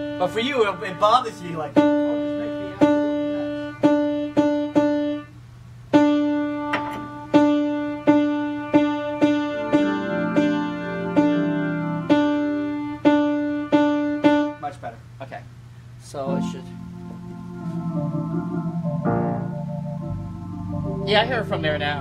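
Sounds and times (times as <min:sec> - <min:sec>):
piano key struck repeatedly: 0:00.0 - 0:05.2, 0:06.0 - 0:14.4, 0:16.3 - 0:22.0
lower piano notes: 0:00.0 - 0:05.4, 0:06.0 - 0:14.7, 0:16.1 - 0:22.0.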